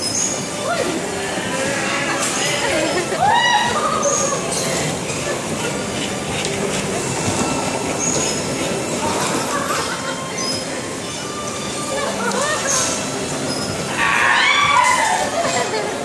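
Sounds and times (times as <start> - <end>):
bumper cars rolling rumble: 0.0 - 16.0
short high squeals: 3.3 - 5.0.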